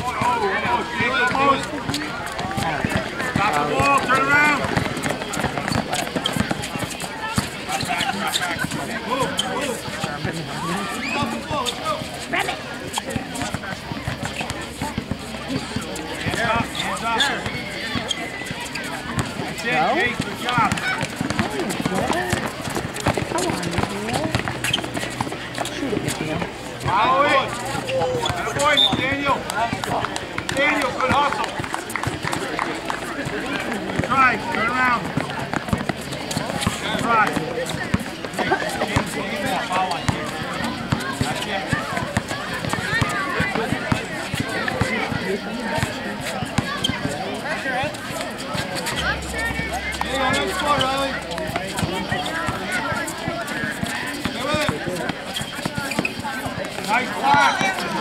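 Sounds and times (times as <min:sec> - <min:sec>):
voices calling out: 0:00.0 - 0:58.0
feet running on court: 0:00.1 - 0:49.1
basketball bouncing: 0:01.8 - 0:07.5, 0:13.2 - 0:15.3, 0:20.2 - 0:25.8.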